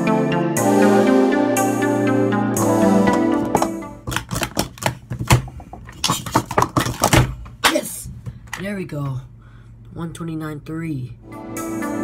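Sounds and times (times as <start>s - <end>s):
background music: 0.0s - 4.5s, 11.2s - 12.0s
plastic cups clacking: 3.1s - 7.3s.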